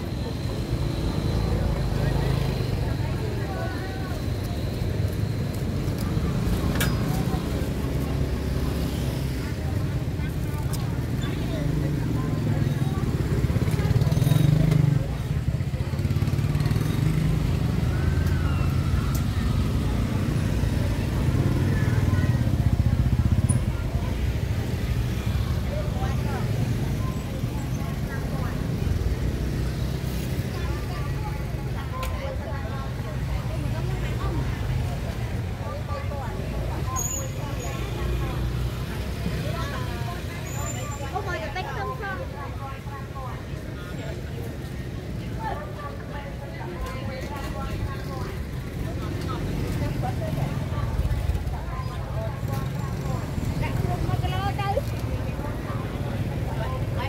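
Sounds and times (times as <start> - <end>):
motor scooter engines passing: 0.0 - 57.0
voices talking: 0.0 - 57.0.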